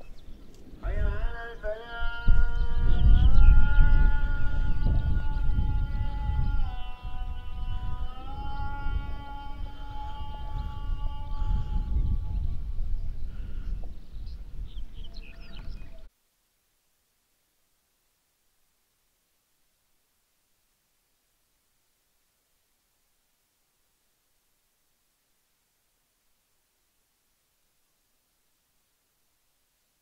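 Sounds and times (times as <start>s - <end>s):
wind rumble on microphone: 0.0s - 16.1s.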